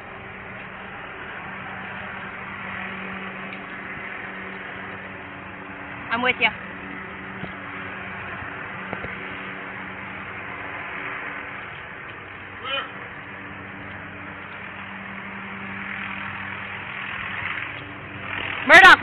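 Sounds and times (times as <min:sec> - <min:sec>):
distant call: 0:00.0 - 0:19.0
haze of noise: 0:00.0 - 0:19.0
steady mechanical hum: 0:00.0 - 0:19.0.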